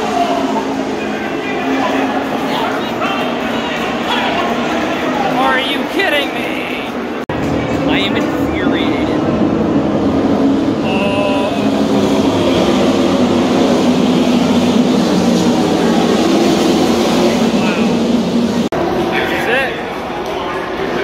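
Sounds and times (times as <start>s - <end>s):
race car engines droning: 0.0s - 21.0s.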